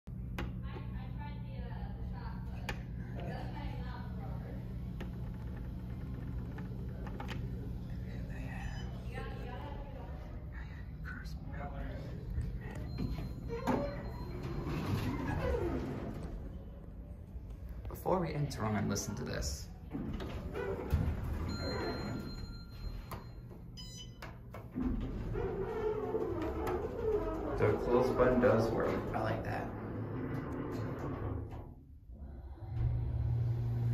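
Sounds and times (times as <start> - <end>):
steady low hum: 0.1 - 33.9
elevator doors sliding closed: 12.8 - 16.7, 19.9 - 23.1, 24.7 - 33.9.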